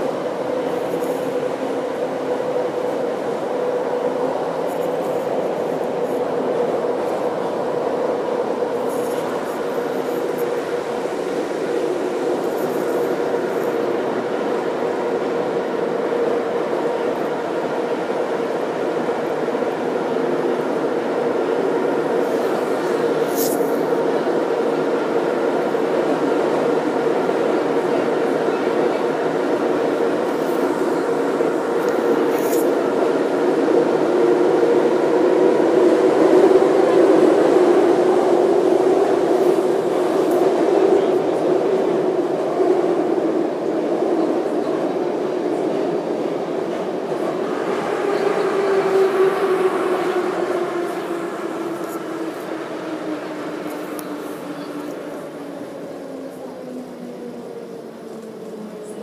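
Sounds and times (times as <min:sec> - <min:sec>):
metro train rumble: 0:00.0 - 0:59.0.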